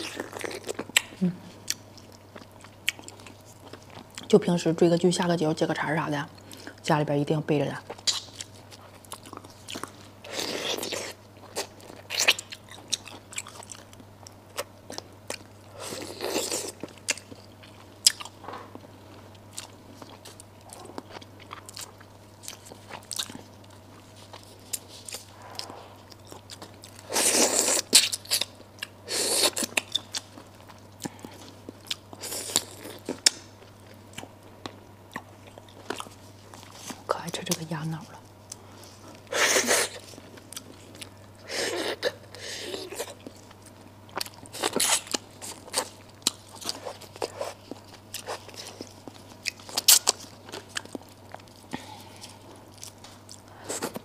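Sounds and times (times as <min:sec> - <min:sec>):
wet chewing: 0:38.5 - 0:54.0.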